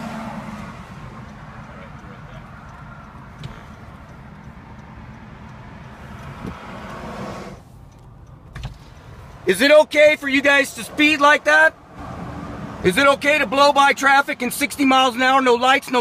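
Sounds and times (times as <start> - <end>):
vehicle and road noise: 0.0 - 16.0.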